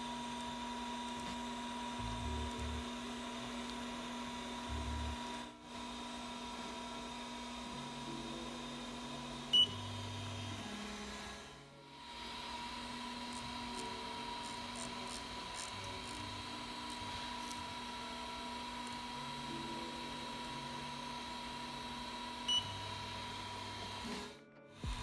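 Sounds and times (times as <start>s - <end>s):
printer fans humming with whine: 0.0s - 25.0s
stepper motor low hums: 1.1s - 5.4s.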